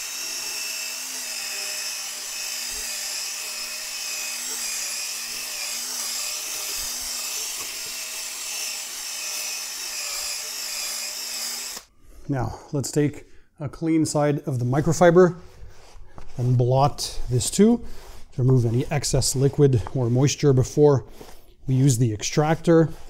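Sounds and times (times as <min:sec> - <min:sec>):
drill motor hum: 0:00.0 - 0:11.9
brush scrubbing carpet: 0:14.8 - 0:23.0.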